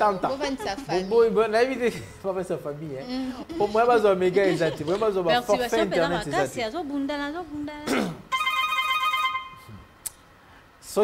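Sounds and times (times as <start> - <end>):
telephone ringing: 8.3 - 9.6.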